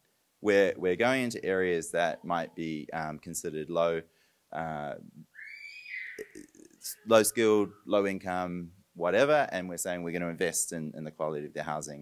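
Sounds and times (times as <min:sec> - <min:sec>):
person speaking: 0:00.5 - 0:04.0, 0:06.2 - 0:12.0.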